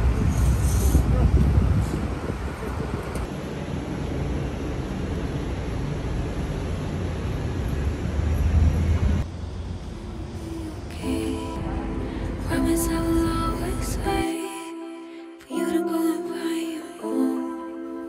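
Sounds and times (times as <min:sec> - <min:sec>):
wind rumble on microphone: 0:00.0 - 0:03.3
traffic noise: 0:00.0 - 0:14.3.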